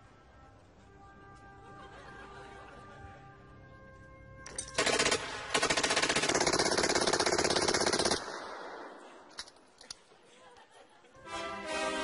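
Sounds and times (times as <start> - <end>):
machine gun firing bursts: 4.6 - 9.1.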